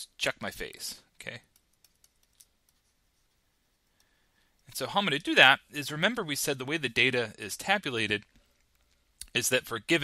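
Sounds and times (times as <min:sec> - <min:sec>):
stylus ticking on tablet: 0:01.5 - 0:02.8.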